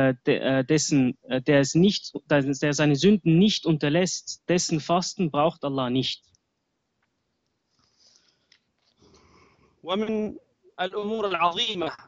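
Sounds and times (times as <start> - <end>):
man speaking: 0.0 - 6.2, 9.9 - 12.0.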